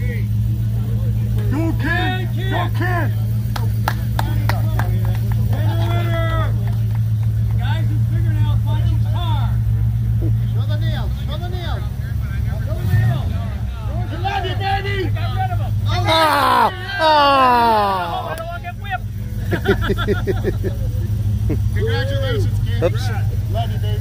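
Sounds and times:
car engine idling: 0.0s - 24.0s
crowd voices: 0.0s - 24.0s.

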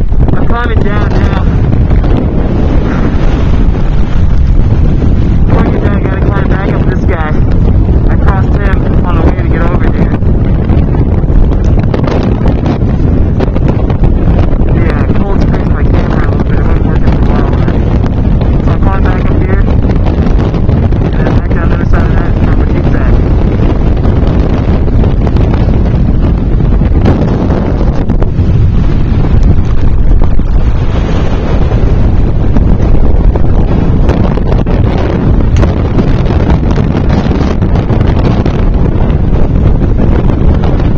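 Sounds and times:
wind on microphone rumble: 0.0s - 40.9s.

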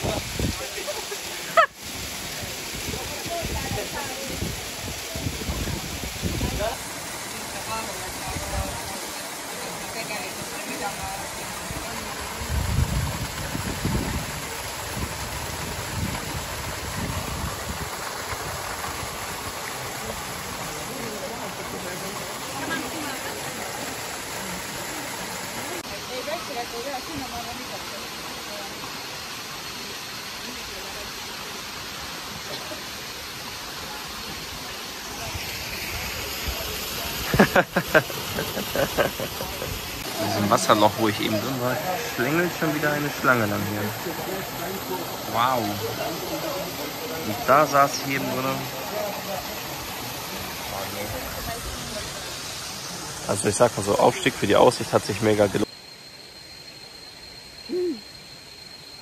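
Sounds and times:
waterfall rushing into pool: 0.0s - 55.7s.

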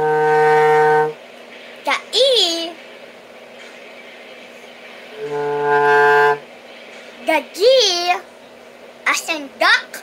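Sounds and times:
bass clarinet holding low note: 0.0s - 1.2s, 5.2s - 6.4s.

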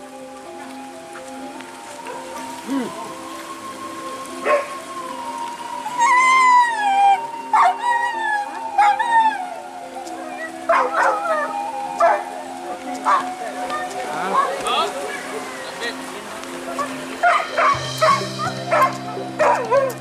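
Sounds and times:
dogs barking and yelping: 0.5s - 20.0s
dog howling: 4.1s - 15.6s, 16.8s - 20.0s.

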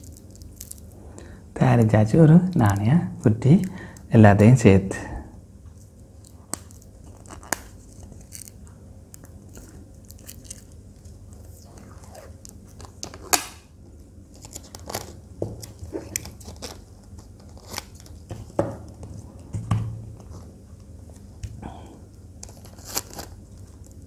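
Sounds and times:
packing tape peeling and crackling: 0.0s - 1.0s, 6.1s - 13.7s, 14.3s - 19.1s, 22.4s - 24.0s
tape snap: 13.0s - 13.7s.

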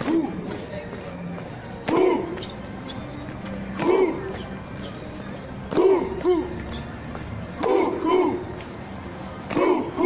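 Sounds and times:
group chanting in unison: 7.6s - 8.6s.

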